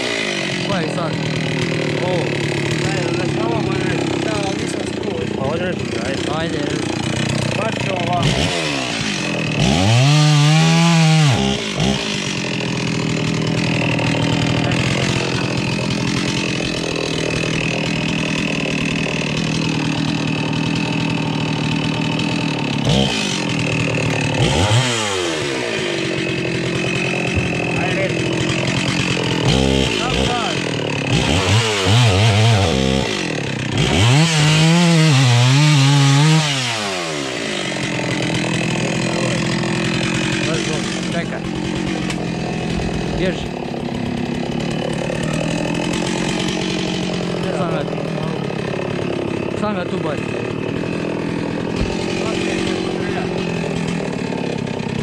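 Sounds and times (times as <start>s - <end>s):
chainsaw idling and revving: 0.0s - 55.0s.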